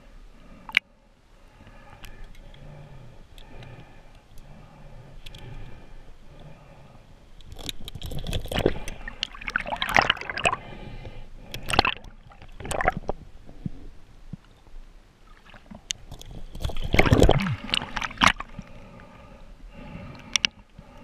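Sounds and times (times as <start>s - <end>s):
fish splashing and knocking: 15.6s - 18.5s.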